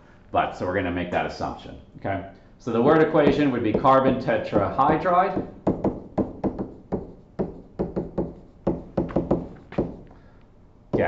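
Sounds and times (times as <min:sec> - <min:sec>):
stylus tapping on tablet: 0:03.2 - 0:10.1.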